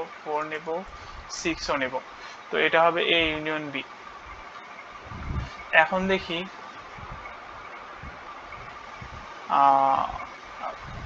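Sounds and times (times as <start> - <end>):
man holding a syllable: 9.5 - 11.0.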